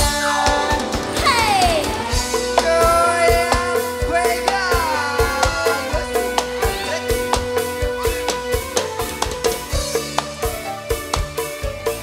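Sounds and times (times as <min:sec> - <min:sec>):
drums striking quick beat: 0:00.0 - 0:12.0
held keyboard melody: 0:00.0 - 0:12.0.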